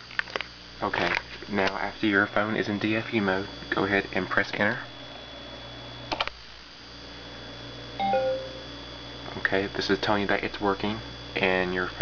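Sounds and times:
two-note computer chime: 0:08.0 - 0:08.7.

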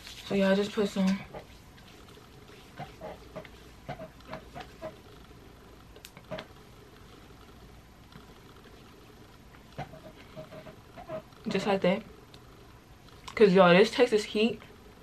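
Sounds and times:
hands rubbing and patting skin: 0:00.0 - 0:05.0.

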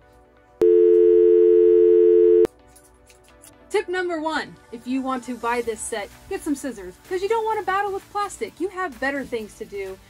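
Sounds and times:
telephone dial tone: 0:00.6 - 0:02.5.

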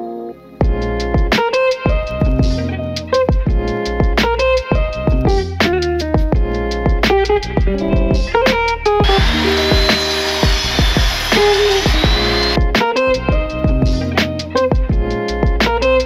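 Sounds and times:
miter saw cutting wood: 0:09.0 - 0:12.6.

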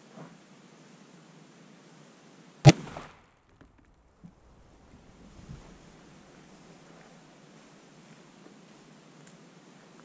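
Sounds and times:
rifle shot: 0:02.6 - 0:03.5.

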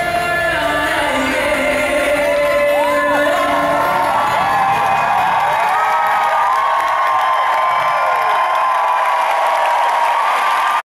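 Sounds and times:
crowd cheering roar: 0:02.7 - 0:10.9.

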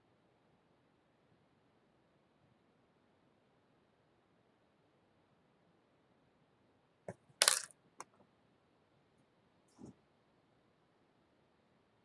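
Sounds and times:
small hard object clattering: 0:07.4 - 0:07.7.

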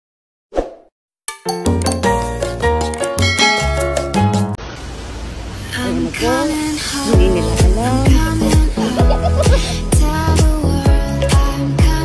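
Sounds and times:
music with steady bass line: 0:01.6 - 0:04.6, 0:07.1 - 0:12.0.

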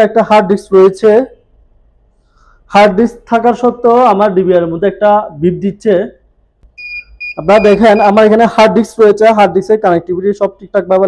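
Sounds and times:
man talking: 0:00.0 - 0:01.4, 0:02.7 - 0:06.2, 0:07.4 - 0:11.0
high electronic beeping: 0:06.8 - 0:08.4.

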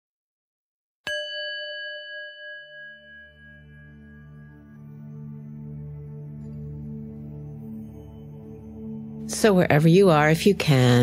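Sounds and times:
bell-like chime ringing: 0:01.1 - 0:09.3
ambient music drone: 0:03.0 - 0:10.1.

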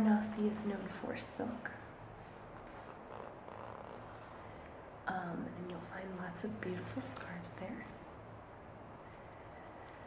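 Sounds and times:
room fans humming: 0:00.0 - 0:10.0
soft rustling of a scarf: 0:01.4 - 0:04.9, 0:05.8 - 0:10.0.

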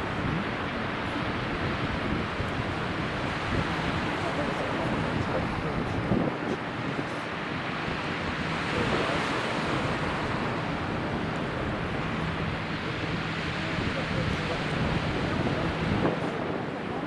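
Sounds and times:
distant city ambience: 0:00.0 - 0:17.0
wind buffeting microphone: 0:00.0 - 0:17.0.

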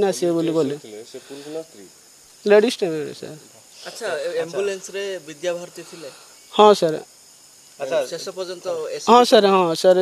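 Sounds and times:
faint steady hiss: 0:00.0 - 0:10.0
man speaking: 0:03.7 - 0:06.3, 0:07.8 - 0:09.1.

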